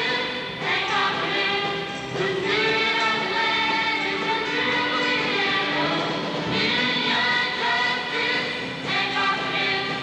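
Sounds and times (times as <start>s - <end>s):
choir singing: 0.0s - 10.0s.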